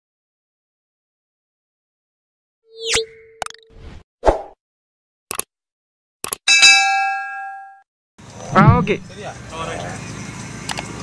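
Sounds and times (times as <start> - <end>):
bright bell ding: 6.5 - 7.8.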